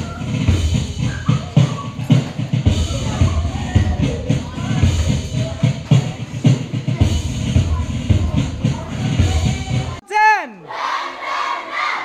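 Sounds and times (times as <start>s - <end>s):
children shouting: 0.0s - 5.8s, 7.0s - 12.0s.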